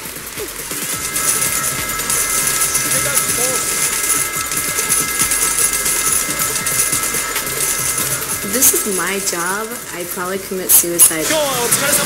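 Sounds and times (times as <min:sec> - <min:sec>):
clatter of steel balls: 0:00.0 - 0:12.0
electronic machine tones: 0:00.4 - 0:12.0.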